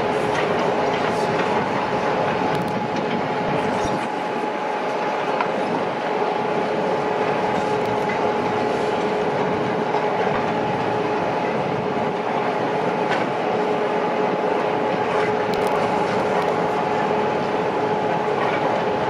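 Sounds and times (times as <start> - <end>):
constant mechanical whine: 0.0 - 19.0
excavators working: 0.0 - 19.0.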